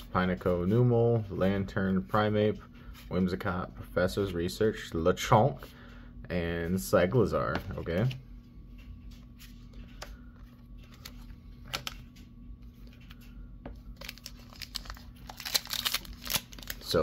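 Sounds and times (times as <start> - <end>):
foil wrapper crinkling: 13.9 - 17.0.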